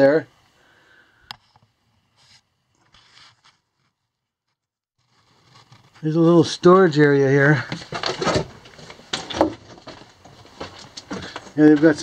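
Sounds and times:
footsteps on loose rock: 7.6 - 12.0.

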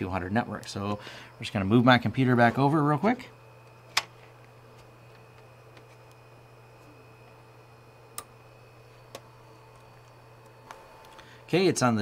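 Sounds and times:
sharp clicks from handling cables: 3.9 - 4.1.

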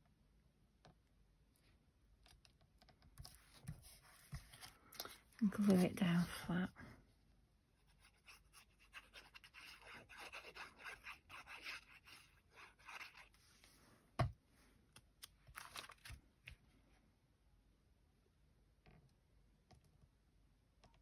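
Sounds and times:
card handling: 15.2 - 16.2.

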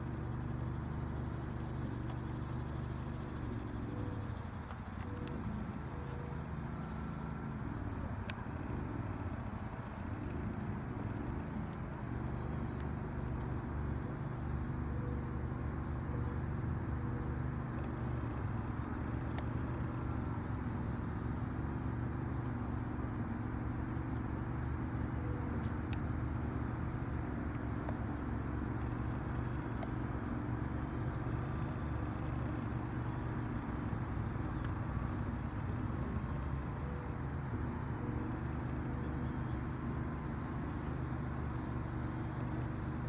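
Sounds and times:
low outdoor rumble: 0.0 - 43.0.

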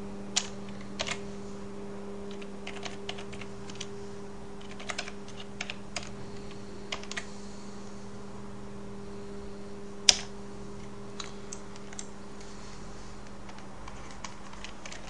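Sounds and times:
steady low hum: 0.0 - 15.0
keyboard typing clicks: 0.4 - 1.2, 2.3 - 3.9, 4.6 - 6.1, 6.9 - 7.3, 13.5 - 15.0.

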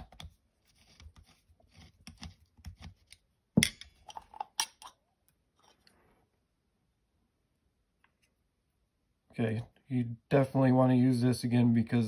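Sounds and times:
screwdriver metallic clicks and scrapes: 0.0 - 3.2.

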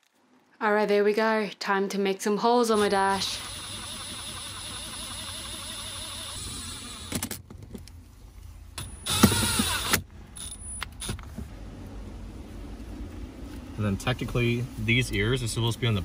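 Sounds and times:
impact driver driving screws: 8.8 - 11.2.

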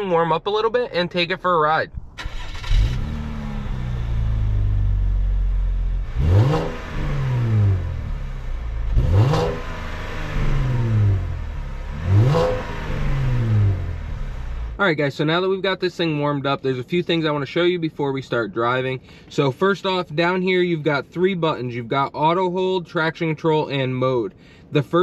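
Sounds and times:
car engine idling and revving: 1.9 - 14.9.

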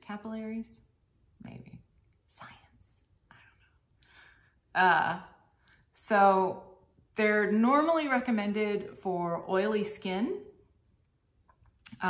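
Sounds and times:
woman whispering: 1.4 - 3.8.

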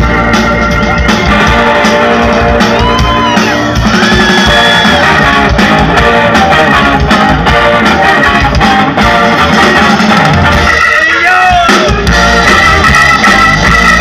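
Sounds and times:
garage rock band playing: 0.0 - 14.0.

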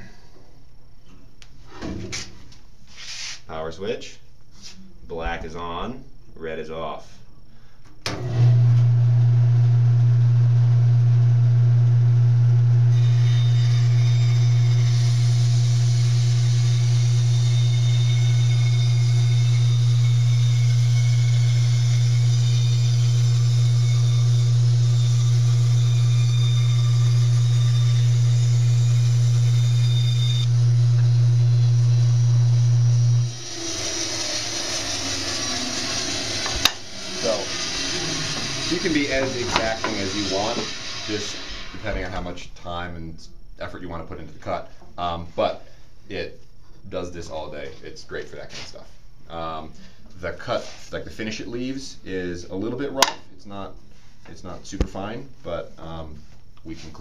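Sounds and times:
bandsaw motor humming: 8.1 - 42.2
bandsaw running down: 13.0 - 42.3
bandsaw blade cutting board: 33.2 - 42.3.

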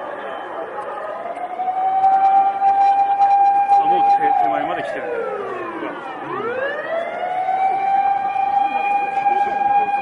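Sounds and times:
siren wailing: 0.0 - 10.0.

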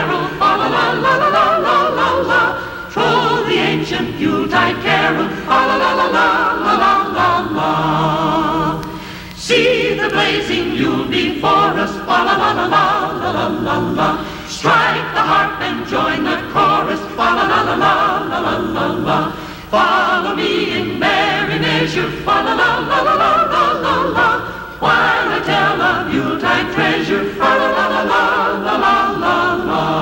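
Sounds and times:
choir singing christmas music: 0.0 - 30.0.

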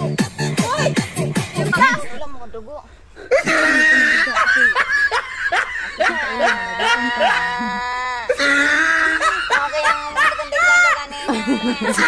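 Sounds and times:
woman laughing: 3.3 - 12.0.

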